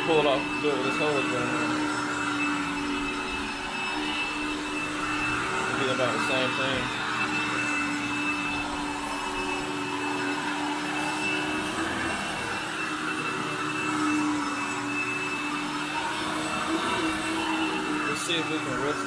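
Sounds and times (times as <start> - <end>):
vacuum cleaner running: 0.0 - 19.0.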